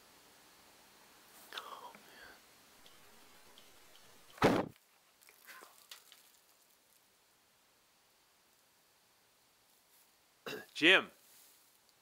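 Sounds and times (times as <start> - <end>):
faint whisper: 1.4 - 2.4, 5.4 - 5.8.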